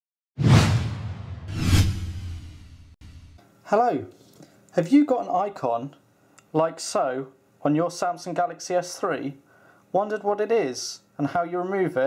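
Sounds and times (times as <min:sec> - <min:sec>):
whoosh sound effects: 0:00.4 - 0:03.4
low hum: 0:00.6 - 0:03.4.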